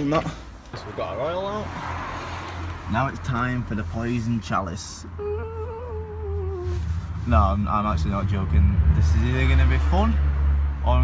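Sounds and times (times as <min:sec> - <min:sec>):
steady low rumble: 0:02.6 - 0:11.0.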